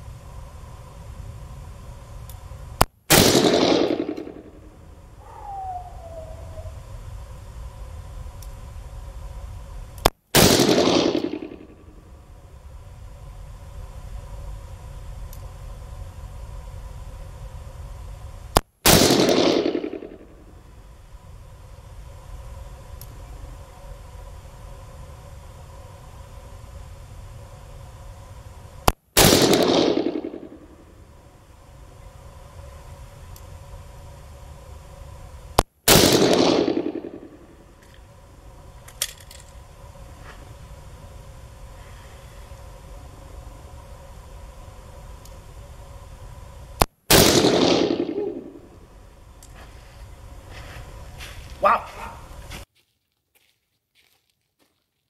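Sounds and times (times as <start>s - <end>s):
revolver gunshots: 3.1s - 4.7s, 10.3s - 12.0s, 18.8s - 20.4s, 29.2s - 30.8s, 35.9s - 37.6s, 47.1s - 48.8s.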